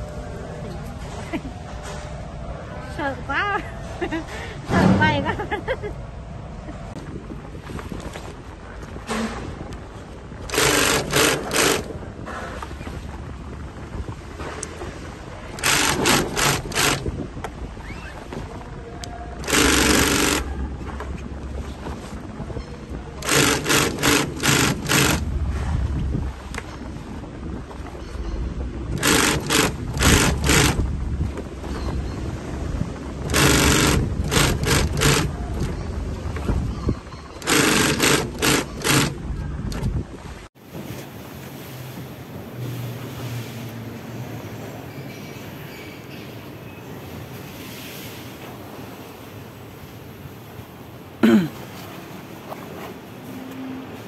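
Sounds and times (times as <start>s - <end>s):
low motor hum: 0.0s - 40.5s
sewing machine stitching: 10.5s - 11.9s, 15.6s - 17.1s, 19.4s - 20.5s, 23.2s - 25.2s, 29.0s - 30.8s, 33.3s - 35.7s, 37.4s - 39.2s.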